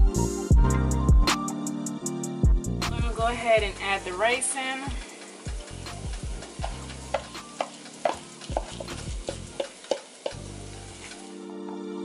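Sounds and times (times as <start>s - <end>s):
food sizzling: 3.8s - 11.5s
wooden spoon knocking on pan: 5.5s - 10.5s.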